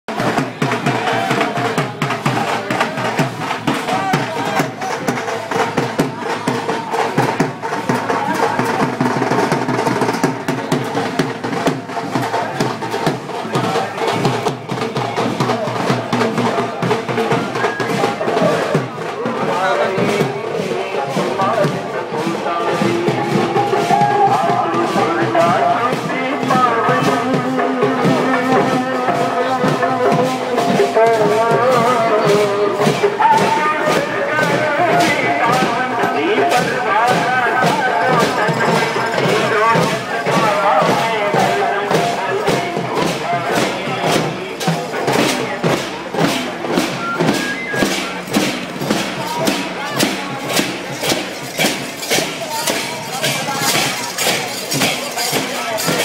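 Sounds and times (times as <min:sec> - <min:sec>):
crowd voices: 0:00.0 - 0:56.0
drums beaten fast: 0:00.0 - 0:56.0
wavering melody: 0:46.1 - 0:51.4.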